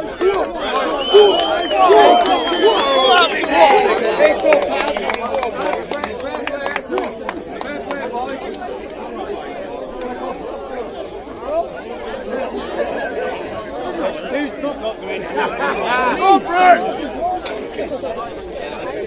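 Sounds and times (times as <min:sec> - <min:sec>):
crowd of men chattering: 0:00.0 - 0:19.0.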